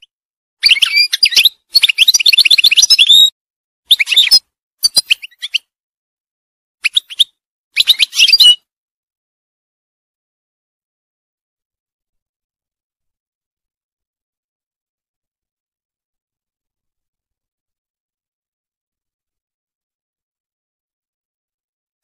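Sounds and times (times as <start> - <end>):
bird twittering song: 0.0 - 3.3, 3.9 - 5.7, 6.8 - 8.6.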